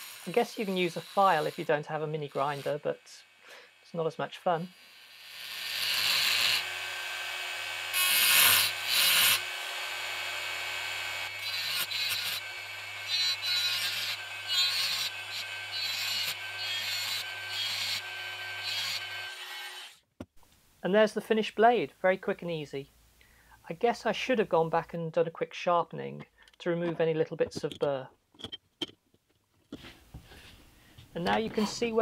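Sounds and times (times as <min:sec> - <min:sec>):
rotary grinder grinding steel: 0:00.0 - 0:03.0, 0:04.6 - 0:20.0.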